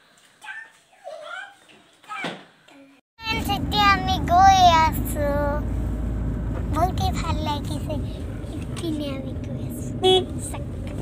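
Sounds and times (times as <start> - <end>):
car cabin rumble: 3.3 - 11.0.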